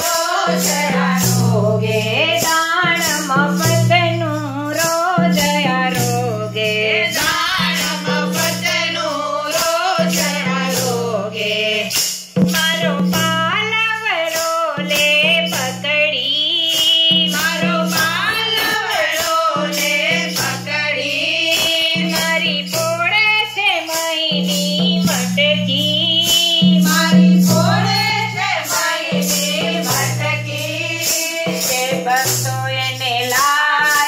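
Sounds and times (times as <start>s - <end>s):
rhythmic hand clapping: 0.0s - 4.0s, 7.1s - 10.9s, 16.6s - 34.0s
women singing devotional song: 0.0s - 34.0s.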